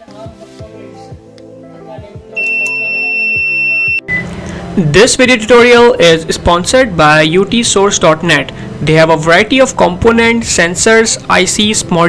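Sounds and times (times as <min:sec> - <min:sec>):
background music: 0:00.0 - 0:12.0
high-pitched alarm buzzer tone: 0:02.4 - 0:04.2.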